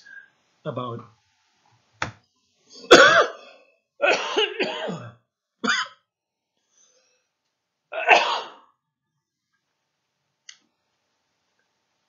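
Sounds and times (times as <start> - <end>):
person coughing: 2.8 - 6.0, 8.0 - 8.6.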